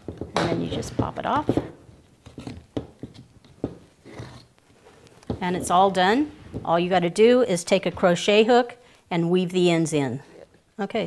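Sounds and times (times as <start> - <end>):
soft fabric rustle: 3.8 - 6.9.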